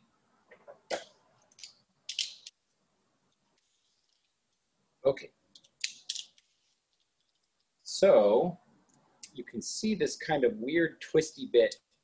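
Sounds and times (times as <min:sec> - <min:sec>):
cord rustling: 0:00.5 - 0:04.7, 0:05.5 - 0:07.8.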